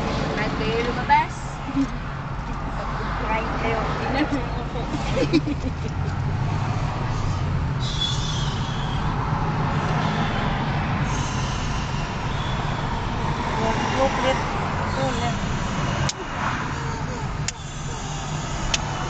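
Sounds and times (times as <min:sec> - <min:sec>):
car road and engine noise: 0:00.0 - 0:19.0
sharp clicks: 0:18.6 - 0:18.9.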